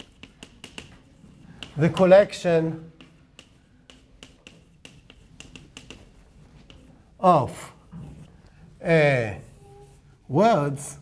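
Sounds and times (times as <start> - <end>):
chalk tapping on blackboard: 0.0 - 8.3.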